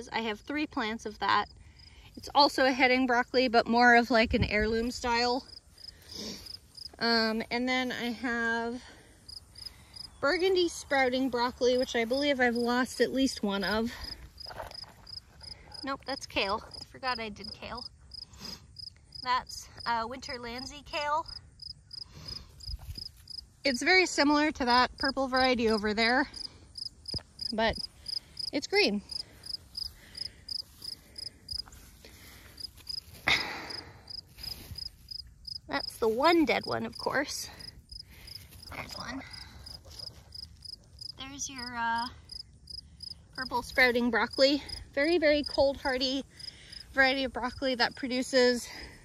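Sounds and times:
insect chirping: 0:05.4 - 0:07.0, 0:09.0 - 0:10.7, 0:13.9 - 0:23.6, 0:25.0 - 0:46.9.

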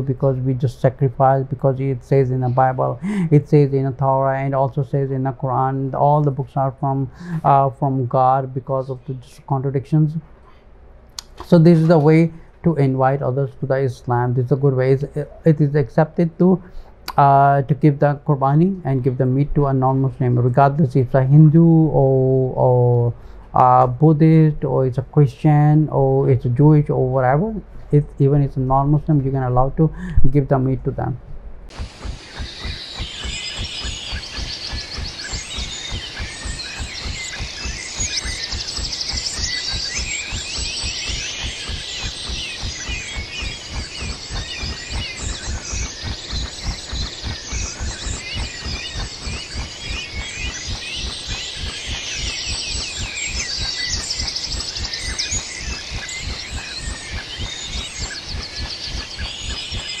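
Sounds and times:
birds chirping: 0:00.0 - 1:00.0
low pulsing rumble: 0:31.1 - 1:00.0.

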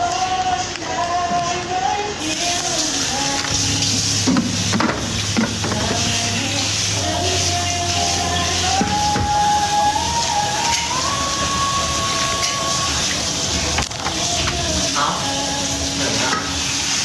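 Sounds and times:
tap water running into sink: 0:02.4 - 0:17.0.

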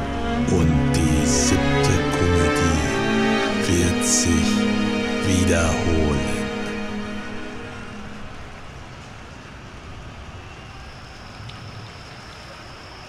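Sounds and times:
held musical note: 0:00.0 - 0:08.8.

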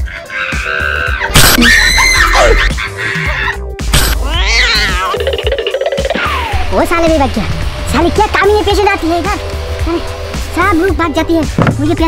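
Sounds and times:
loud screaming: 0:00.0 - 0:03.6, 0:04.2 - 0:05.2
comedy background music: 0:00.0 - 0:12.0.

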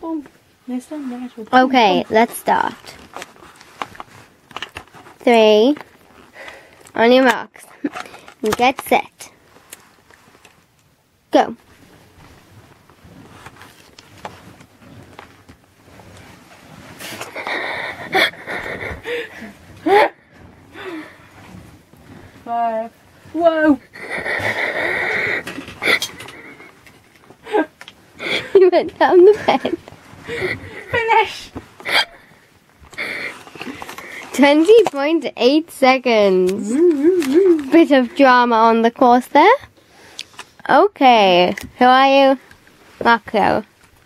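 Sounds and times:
faint rustling: 0:00.0 - 0:44.0.

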